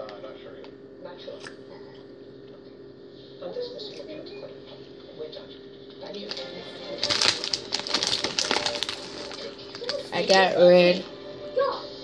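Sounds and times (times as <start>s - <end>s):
plastic packet crinkling: 6.2s - 10.6s.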